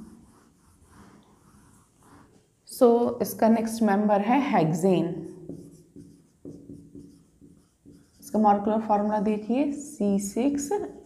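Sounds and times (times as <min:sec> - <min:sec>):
marker writing on whiteboard: 0:00.0 - 0:02.6, 0:05.0 - 0:09.1.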